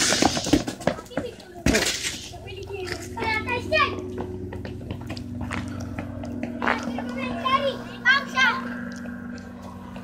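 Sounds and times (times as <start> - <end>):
steady low hum: 0.0 - 10.0
children calling out: 6.6 - 9.0.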